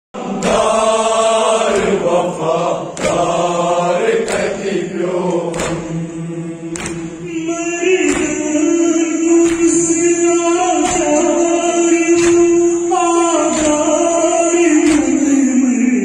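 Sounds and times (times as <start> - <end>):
sharp beat: 0.2 - 15.5
voices chanting a mourning lament: 0.2 - 16.0.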